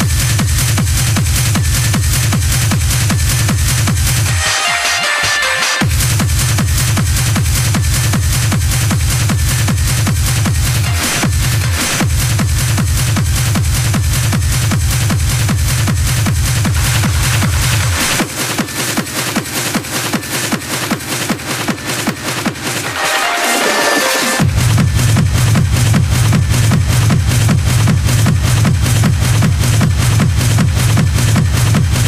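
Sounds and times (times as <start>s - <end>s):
fast kick drum: 0.0s - 4.5s, 5.8s - 23.2s, 24.4s - 32.0s
hard techno music: 0.0s - 32.0s
upper percussion pulsing: 0.0s - 32.0s.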